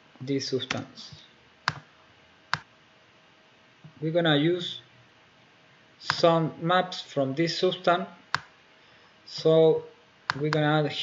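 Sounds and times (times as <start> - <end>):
sharp computer clicks: 1.6 - 1.9, 6.0 - 6.4, 8.3 - 8.6, 10.3 - 10.7.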